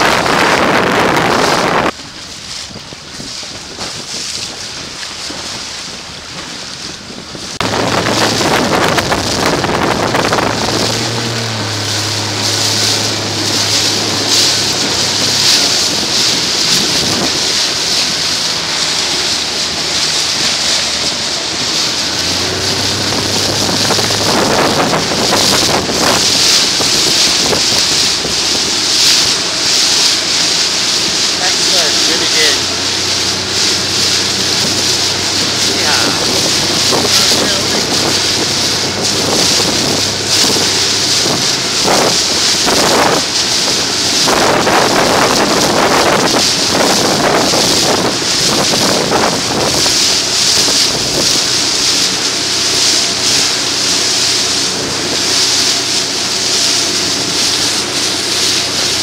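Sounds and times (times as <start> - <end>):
motorboat engine hum: 0.0 - 59.0
rushing water: 0.0 - 59.0
wind buffeting microphone: 0.0 - 59.0.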